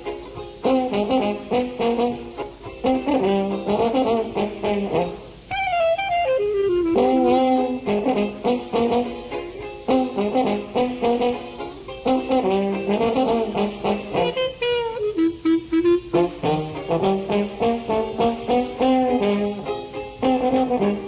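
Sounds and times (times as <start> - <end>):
jazz band playing: 0.0 - 21.0
horn sliding down in pitch: 2.8 - 9.2.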